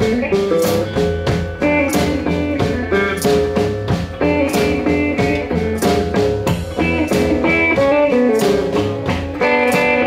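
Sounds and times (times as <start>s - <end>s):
drum kit beat: 0.0s - 10.0s
electric guitar riff: 0.0s - 10.0s.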